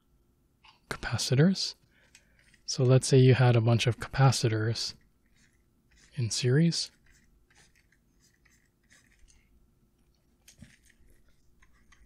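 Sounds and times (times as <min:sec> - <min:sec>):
stylus scratching on tablet: 0:04.1 - 0:09.5, 0:10.7 - 0:12.0.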